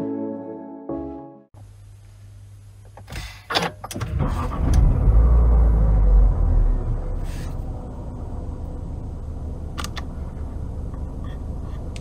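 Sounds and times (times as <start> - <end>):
car engine idling: 5.2 - 12.0.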